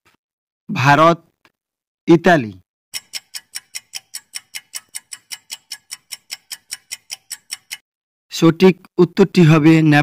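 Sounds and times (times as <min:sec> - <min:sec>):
countdown timer ticking: 0:02.9 - 0:07.8.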